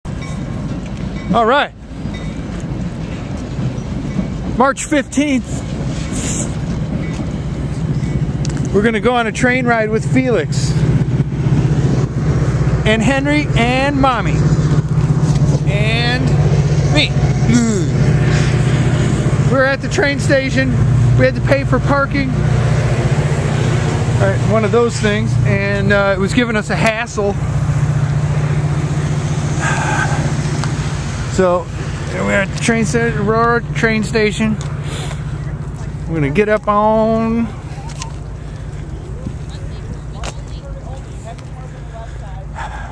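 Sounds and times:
train rumbling and hissing: 0.1 - 42.9
car engine running: 8.5 - 42.8.

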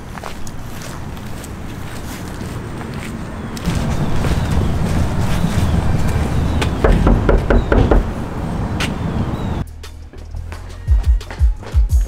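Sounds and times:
steady low rumble: 3.6 - 9.7
fist knocking on door: 6.6 - 8.1.

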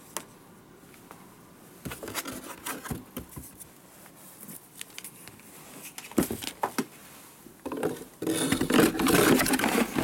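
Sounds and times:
tool scraping against cardboard: 8.2 - 10.0.

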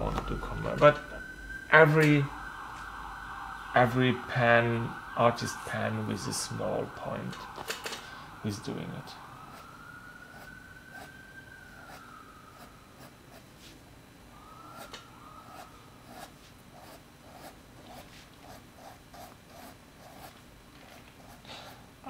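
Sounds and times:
pen scratching on paper: 13.0 - 13.5, 16.1 - 20.4.

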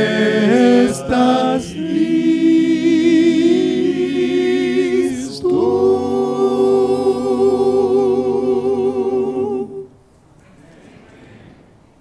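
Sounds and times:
male vocal group singing: 0.0 - 9.9.

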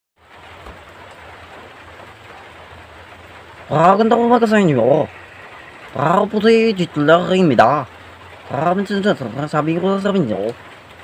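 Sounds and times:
steady background hiss: 0.2 - 11.0
man's voice: 3.7 - 5.2, 5.9 - 7.9, 8.5 - 10.6.

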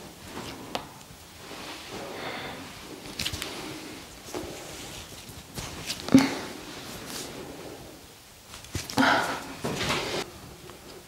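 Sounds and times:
faint rustling of hands: 0.2 - 11.0.

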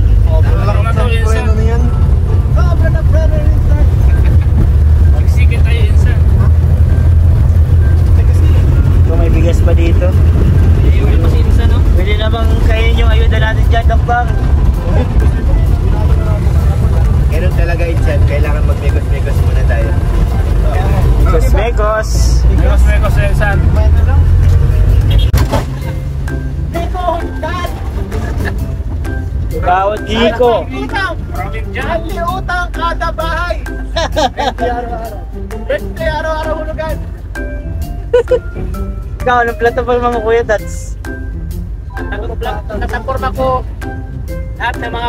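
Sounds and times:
road noise: 0.0 - 45.0
vehicle engine rumble: 0.0 - 45.0
voices talking: 7.8 - 41.1.

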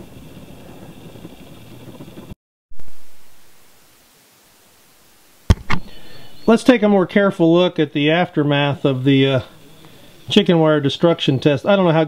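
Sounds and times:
microphone hiss: 0.0 - 12.0
loud low bump: 2.7 - 3.8
sharp click: 5.5 - 5.9.

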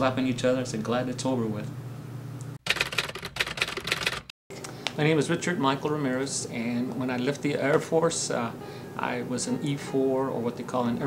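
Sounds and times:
typewriter keys clacking: 2.7 - 4.3.

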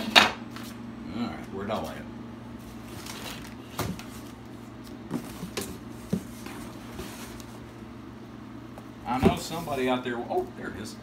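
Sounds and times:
steady low hum: 0.0 - 11.0
cardboard rustling: 2.7 - 7.6.

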